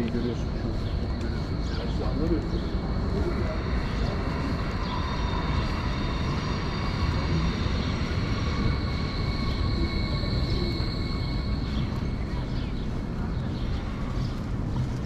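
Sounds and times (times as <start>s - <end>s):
high-pitched vehicle whine: 0.0s - 15.0s
traffic rumble: 0.0s - 15.0s.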